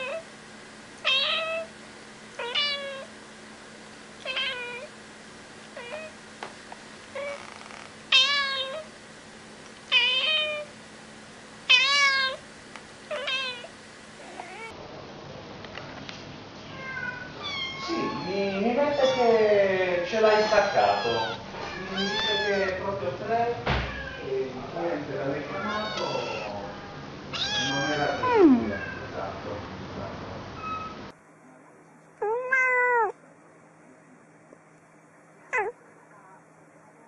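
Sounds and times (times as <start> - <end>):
cat meowing: 0.0 - 0.3, 1.0 - 1.7, 2.4 - 3.1, 4.2 - 4.9, 5.8 - 6.2, 7.2 - 8.9, 9.9 - 10.7, 11.7 - 12.4, 13.1 - 14.7, 16.7 - 19.4, 20.2 - 22.8, 23.8 - 24.3, 25.5 - 29.1, 32.2 - 33.2, 35.5 - 35.8
kittens mewing: 0.0 - 0.3, 1.0 - 1.7, 2.4 - 3.1, 4.2 - 5.0, 5.7 - 6.2, 7.1 - 8.9, 9.9 - 10.7, 11.7 - 12.4, 13.1 - 14.8, 16.8 - 19.4, 20.1 - 22.8, 25.5 - 29.1, 32.2 - 33.2, 35.5 - 35.8.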